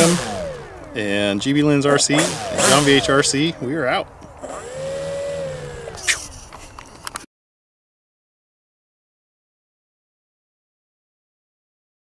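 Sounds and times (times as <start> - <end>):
drone motor and propeller whine: 0.0 - 3.7, 4.3 - 7.2.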